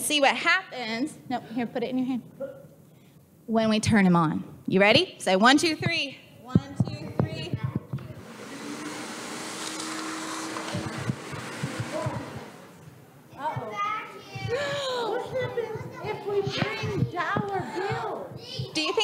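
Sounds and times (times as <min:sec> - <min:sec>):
vacuum motor whooshing: 0:08.2 - 0:12.9
children's voices: 0:13.3 - 0:19.0.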